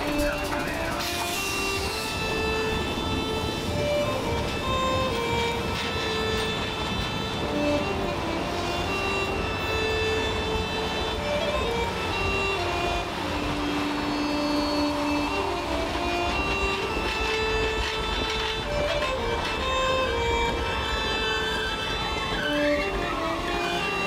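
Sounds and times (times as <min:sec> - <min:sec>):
slow melodic background music: 0:00.0 - 0:24.0
train cars rolling on rails: 0:00.0 - 0:24.0.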